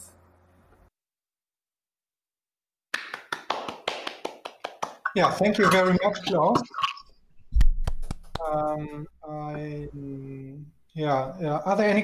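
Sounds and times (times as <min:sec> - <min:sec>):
hand clapping: 0:02.9 - 0:05.9, 0:07.6 - 0:08.6.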